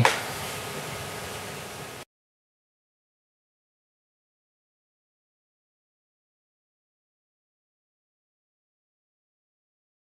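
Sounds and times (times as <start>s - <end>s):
ventilation hiss: 0.0s - 2.1s.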